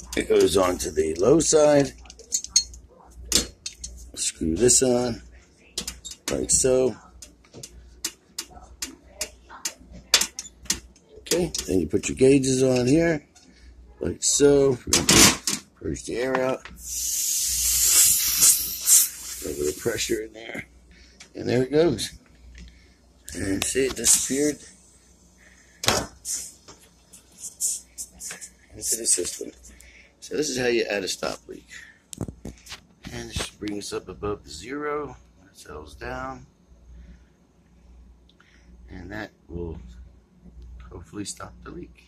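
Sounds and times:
low steady hum: 0.0 - 42.0
short hiss: 16.8 - 20.0, 26.2 - 26.6.

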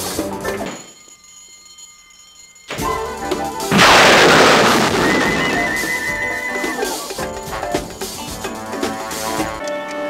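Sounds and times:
loud explosion effect: 3.7 - 5.9.

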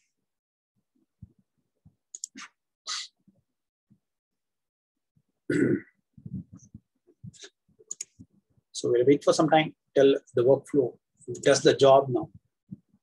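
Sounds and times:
mouse clicks: 2.1 - 2.5, 7.9 - 8.3
man clearing throat: 5.5 - 6.0.

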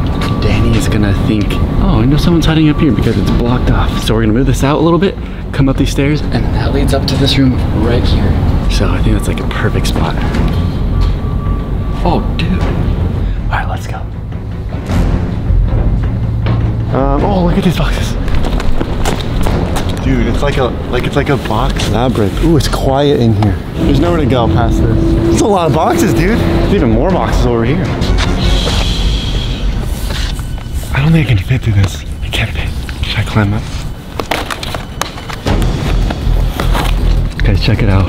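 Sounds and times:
low rumble: 0.0 - 34.0
footsteps on concrete floor: 18.2 - 20.0.

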